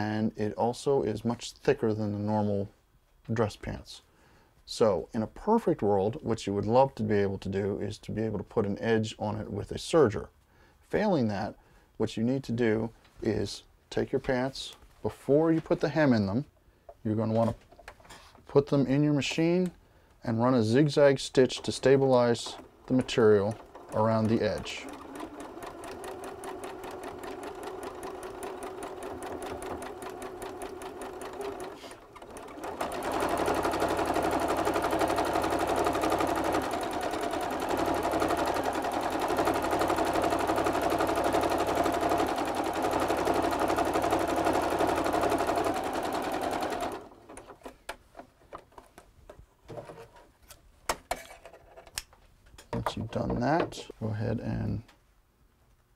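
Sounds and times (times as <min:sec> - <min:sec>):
sewing machine stitching: 0:20.7 - 0:48.7.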